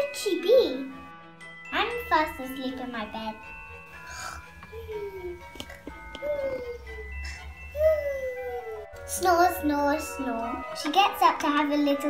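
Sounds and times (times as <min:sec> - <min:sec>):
soft background music: 0:00.0 - 0:12.0
child humming: 0:04.1 - 0:08.9.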